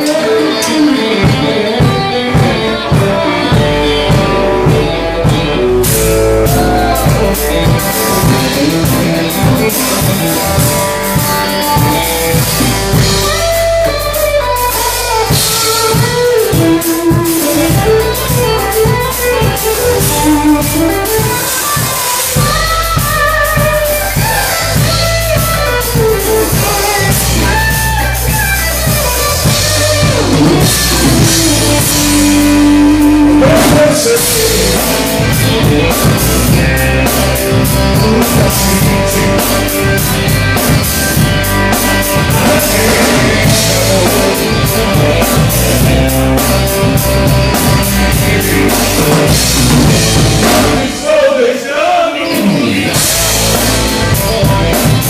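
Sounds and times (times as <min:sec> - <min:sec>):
electric bass line: 0:00.0 - 0:51.3, 0:52.2 - 0:55.0
drum kit: 0:00.0 - 0:51.6, 0:52.2 - 0:55.0
electric guitar with bending notes: 0:00.0 - 0:55.0.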